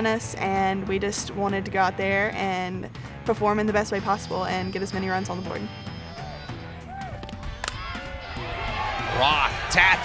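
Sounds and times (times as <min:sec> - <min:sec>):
background music: 0:00.0 - 0:10.0
bat cracking a ball: 0:07.1 - 0:08.1.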